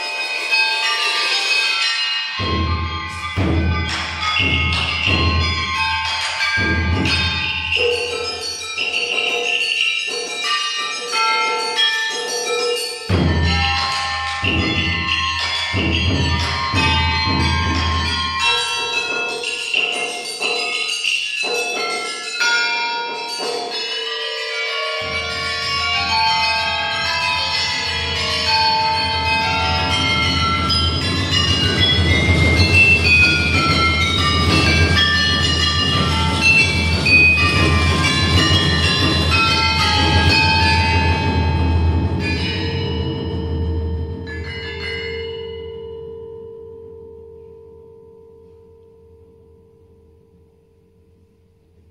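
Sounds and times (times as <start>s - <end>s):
tuned metal bells struck: 0.0s - 50.5s.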